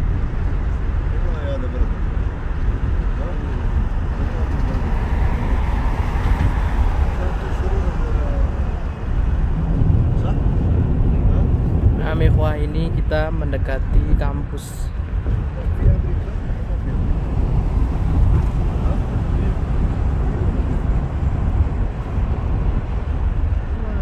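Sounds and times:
car passing: 0.0s - 24.0s
road and engine rumble: 0.0s - 24.0s.

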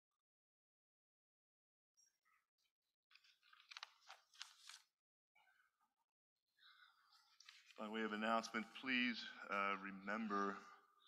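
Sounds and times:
paper rustling and crackling: 3.1s - 4.9s.

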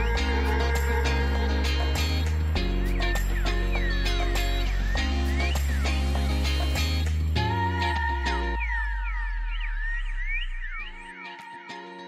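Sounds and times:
steady high tone: 0.0s - 12.0s.

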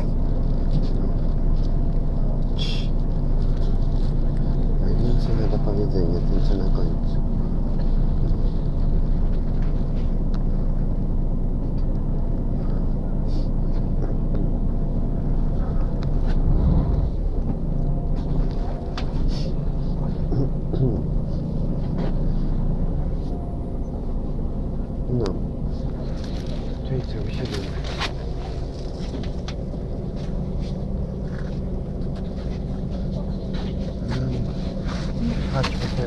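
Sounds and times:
low traffic rumble: 0.0s - 36.0s
indistinct voices: 19.2s - 21.4s, 24.6s - 36.0s.

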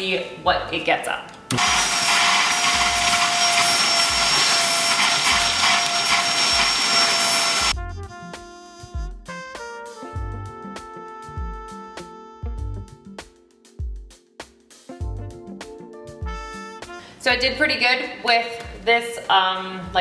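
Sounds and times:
vacuum cleaner motor whining: 1.5s - 7.8s
background music with piano: 9.6s - 20.0s.

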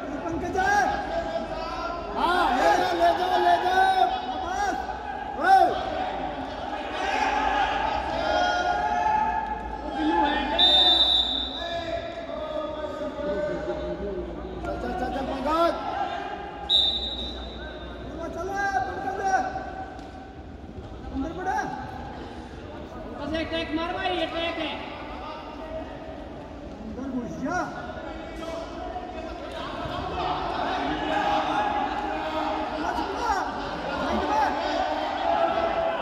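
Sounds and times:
voices calling out in echoing hall: 0.0s - 36.0s.

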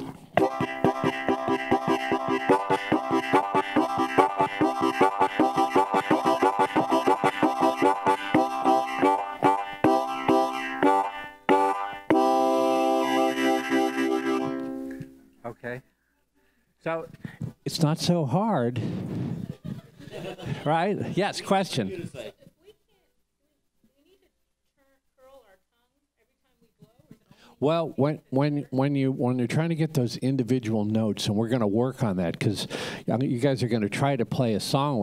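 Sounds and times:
harmonica chugging chords: 0.0s - 15.3s
harmonica long held chord: 0.0s - 15.3s.

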